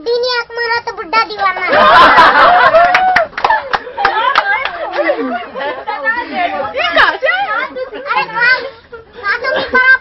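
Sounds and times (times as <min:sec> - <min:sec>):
several voices chattering: 0:03.6 - 0:10.0.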